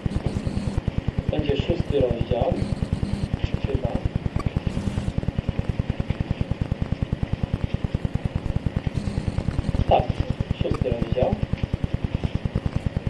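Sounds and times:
low mechanical throb: 0.0s - 13.0s.

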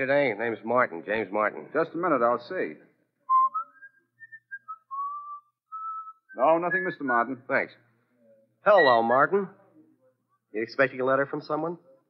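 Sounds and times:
person whistling a tune: 3.3s - 6.4s.

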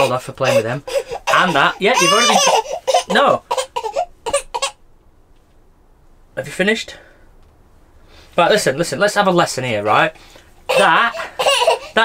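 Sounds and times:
toddler laughing: 0.0s - 4.8s, 10.7s - 12.0s.

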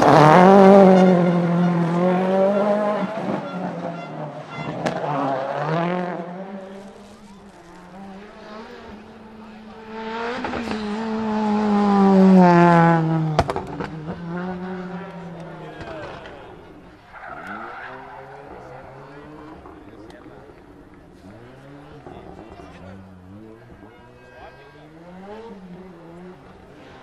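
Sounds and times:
rally car engine driving away: 0.0s - 27.0s.

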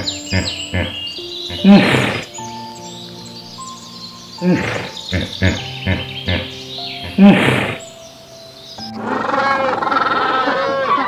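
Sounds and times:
background music: 0.0s - 11.0s
hippopotamus grunting: 0.4s - 2.3s, 7.1s - 7.8s
penguin colony calling: 9.0s - 11.0s.

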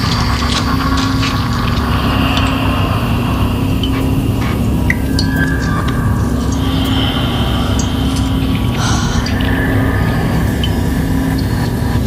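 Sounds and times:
low rumbling electronic drone: 0.0s - 12.0s.

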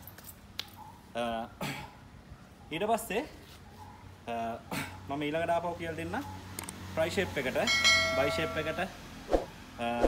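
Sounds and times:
bell-like notification chime: 7.7s - 8.9s.

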